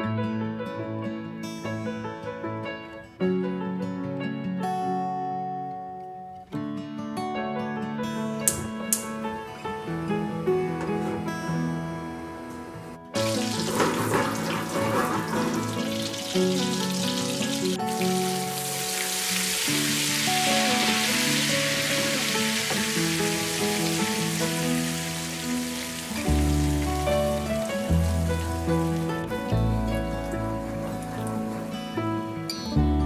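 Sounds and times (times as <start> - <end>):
background music: 7.2 - 33.0
butter sizzling in frying pan: 13.2 - 32.0.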